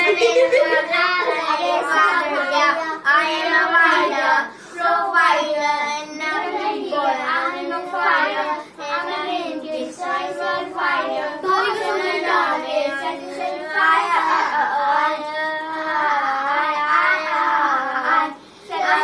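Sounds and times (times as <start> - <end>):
children singing: 0.0 - 19.0.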